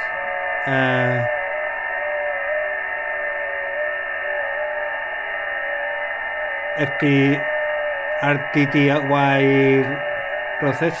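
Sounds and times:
radio receiver hiss: 0.0s - 11.0s
steady whistling tones: 0.0s - 11.0s.

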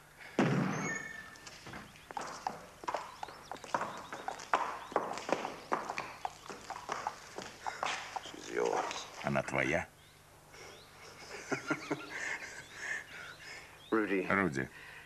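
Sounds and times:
horse hooves clopping on hard floor: 0.8s - 9.2s.

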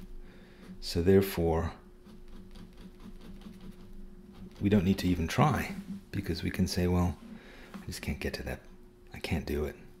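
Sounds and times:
pen scratching on paper: 2.0s - 6.1s.

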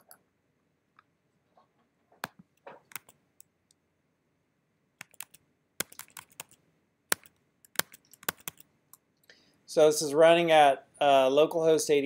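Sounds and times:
computer keyboard typing: 2.2s - 3.2s, 5.0s - 8.7s.

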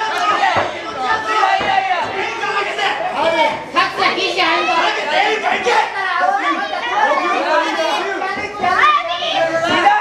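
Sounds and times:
people chattering in a hall: 0.0s - 10.0s.

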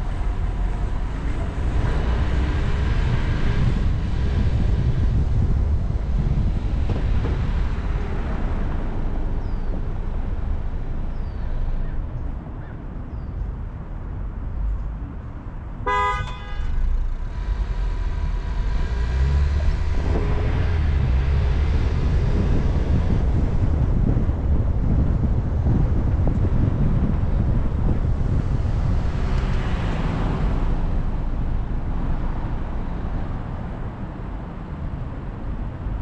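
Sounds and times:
car engine accelerating: 0.0s - 12.2s, 16.6s - 36.0s
car horn toot: 15.8s - 17.0s.

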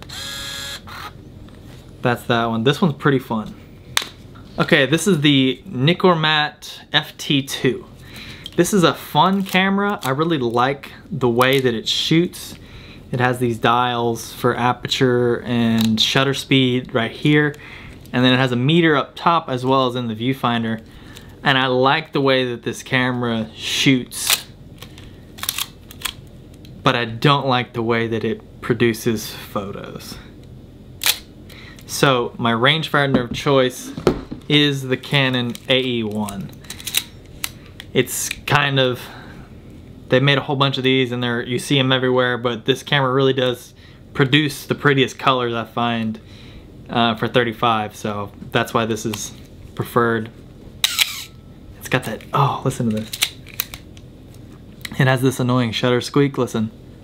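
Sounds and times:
camera shutter squeak: 0.0s - 1.2s, 50.8s - 51.4s
film camera mechanical clicks: 50.8s - 51.3s.

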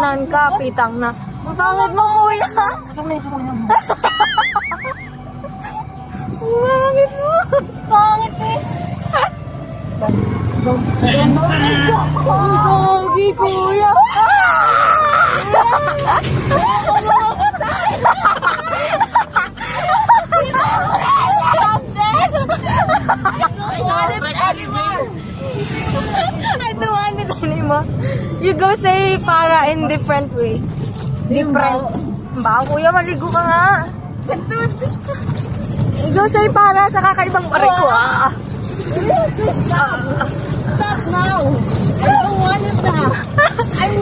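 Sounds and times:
small vehicle running: 0.0s - 44.0s
high-pitched voices laughing: 3.6s - 9.6s, 11.9s - 28.6s, 33.8s - 44.0s.

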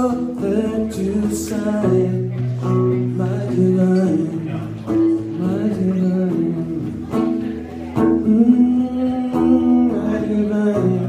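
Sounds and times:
acoustic guitar strumming: 0.0s - 11.0s
man singing wordless notes: 0.0s - 11.0s.

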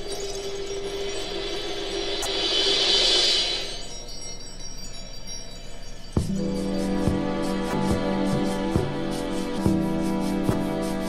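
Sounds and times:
low background hush: 0.0s - 11.0s
orchestral chimes ringing: 0.0s - 11.0s.

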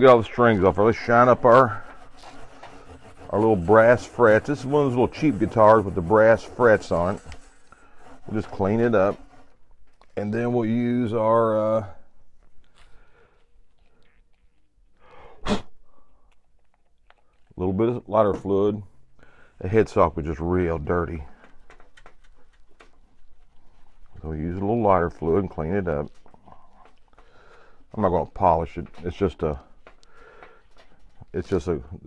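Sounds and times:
cloth rubbing on guitar: 0.0s - 10.8s
man's sneeze-like vocal burst: 15.4s - 15.8s.

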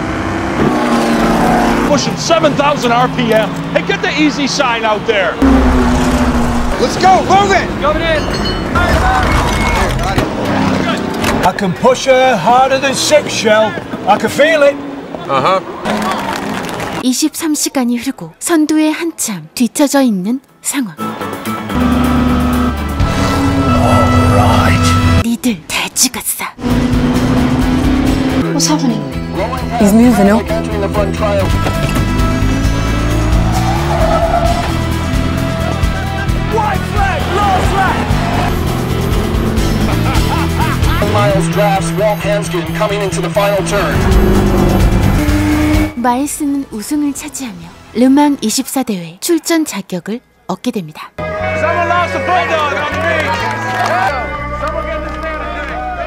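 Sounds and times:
race car engine rumbling: 0.0s - 17.0s, 29.5s - 46.0s
dramatic film score music: 26.7s - 46.1s
people shouting urgently: 35.4s - 38.5s, 51.2s - 56.0s.

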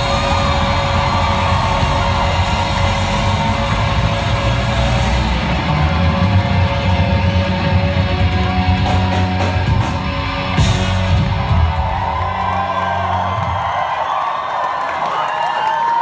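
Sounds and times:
live rock band playing: 0.0s - 12.6s.

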